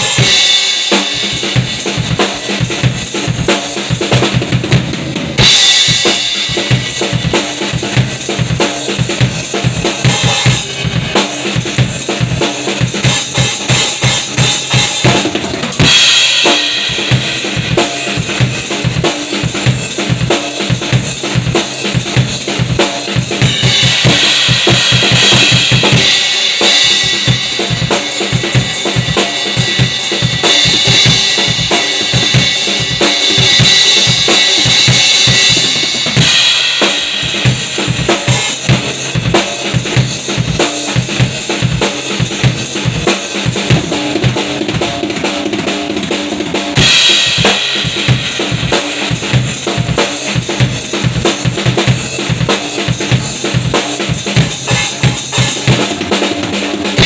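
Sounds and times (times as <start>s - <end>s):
bass drum and snare groove: 0.0s - 57.0s.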